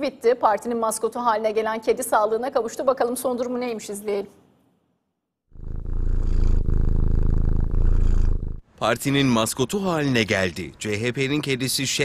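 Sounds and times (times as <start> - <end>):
cat purring: 5.5 - 8.6.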